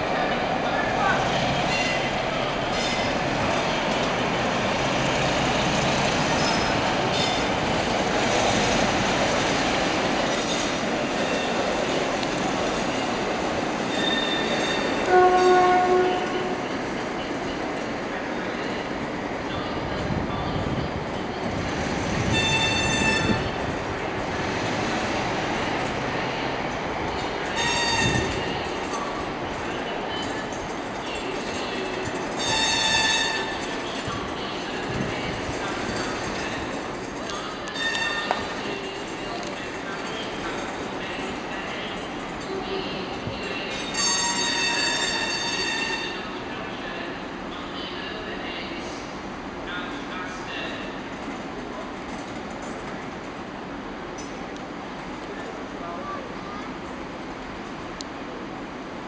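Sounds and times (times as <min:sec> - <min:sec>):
train wheels clacking and rumbling: 0:00.0 - 0:46.4, 0:50.6 - 0:55.5
wheel flange squeals: 0:13.9 - 0:15.0
train horn blast: 0:15.0 - 0:16.7, 0:22.3 - 0:23.5, 0:27.6 - 0:28.3, 0:32.4 - 0:33.5, 0:44.0 - 0:46.3.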